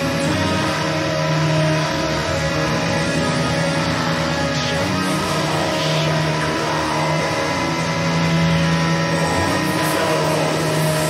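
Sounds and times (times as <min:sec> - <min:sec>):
distorted metal guitar chords: 0:00.0 - 0:11.0.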